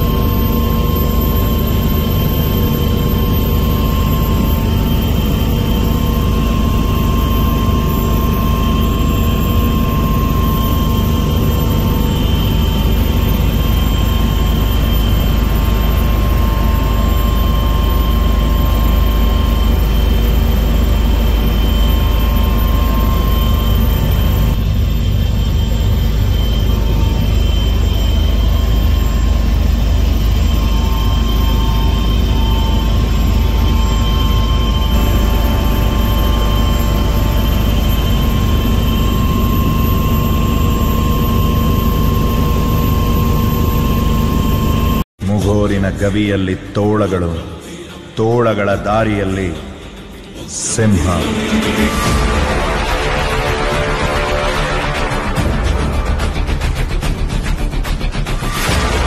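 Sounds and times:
aircraft engine drone: 0.0s - 59.0s
steady whining tones: 0.0s - 59.0s.

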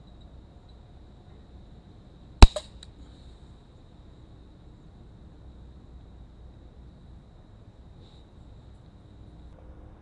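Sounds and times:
air gun shot: 2.4s - 2.7s.

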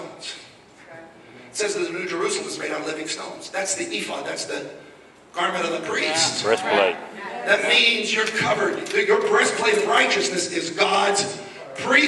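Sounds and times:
man speaking into a microphone: 1.5s - 12.0s.

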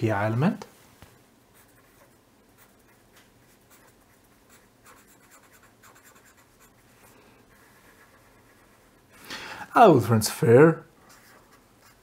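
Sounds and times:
felt-tip pen scratching paper: 1.6s - 6.7s.

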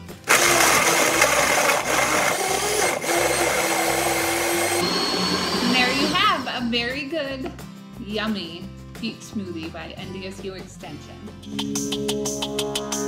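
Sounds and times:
blender running: 0.2s - 6.5s.

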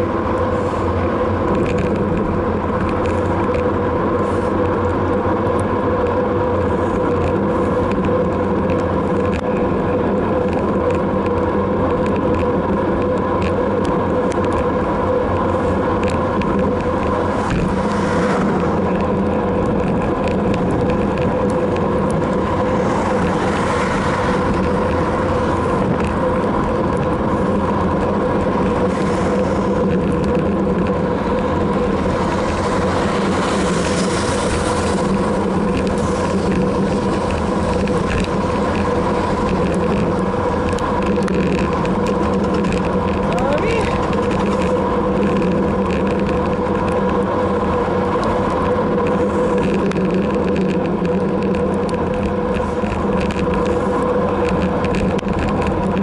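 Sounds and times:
constant hum: 0.0s - 56.0s
road noise: 0.0s - 56.0s
rushing wind: 0.0s - 56.0s.

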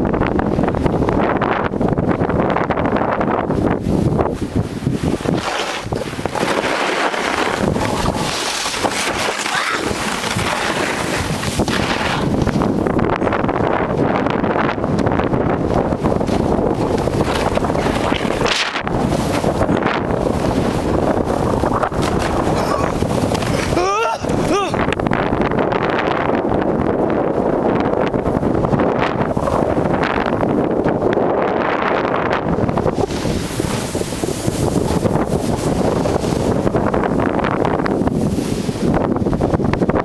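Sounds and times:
wind buffeting microphone: 0.0s - 40.0s
skis sliding through snow: 4.8s - 12.7s, 32.8s - 39.0s.

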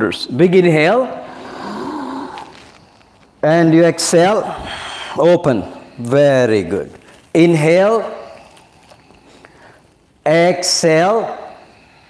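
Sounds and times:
man's deep in-breath: 1.2s - 3.0s, 4.4s - 6.0s, 8.2s - 9.9s.

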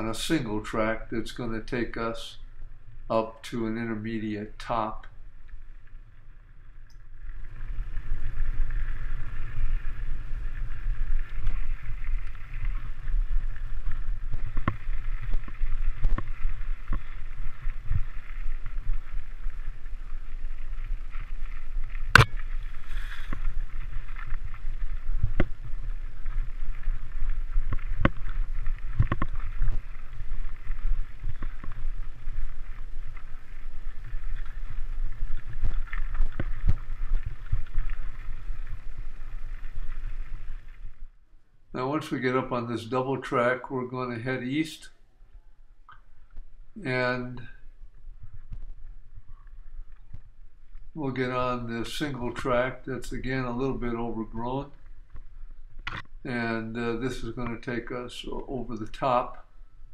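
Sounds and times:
bike tyres on dirt: 0.0s - 45.2s, 45.8s - 59.9s.

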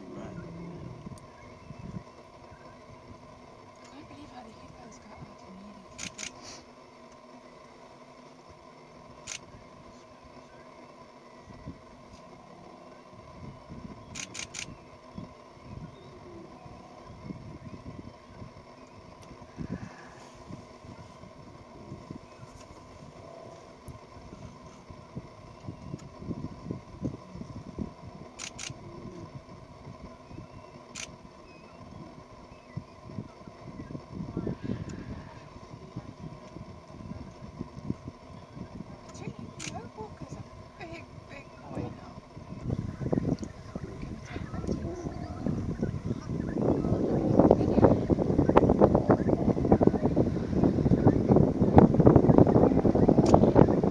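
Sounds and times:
low uneven rumble: 0.0s - 53.9s
camera shutter clicks: 6.0s - 6.4s, 9.2s - 9.5s, 14.1s - 14.7s, 28.4s - 28.8s, 30.9s - 31.2s, 39.6s - 39.8s.

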